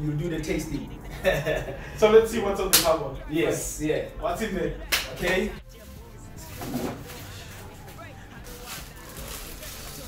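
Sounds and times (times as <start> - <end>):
background music: 0.0 - 10.0
low indistinct talking: 2.6 - 10.0.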